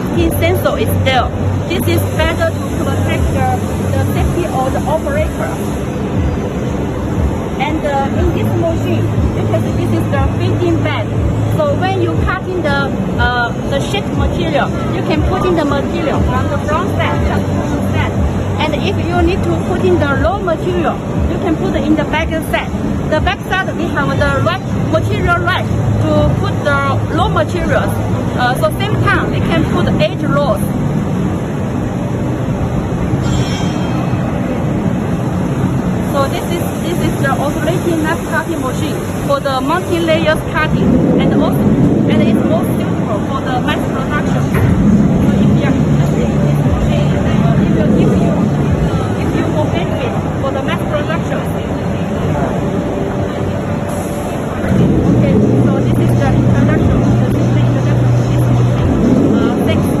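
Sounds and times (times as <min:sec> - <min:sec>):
chatter of crowd: 0:33.2 - 1:00.0.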